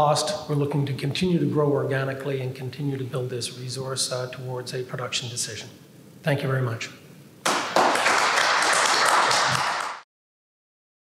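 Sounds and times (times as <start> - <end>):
audience applauding: 7.4 - 10.1.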